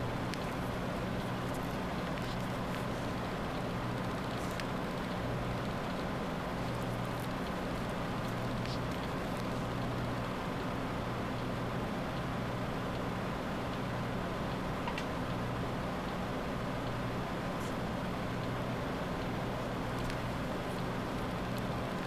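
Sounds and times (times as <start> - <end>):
low hum with hiss: 0.0 - 22.0.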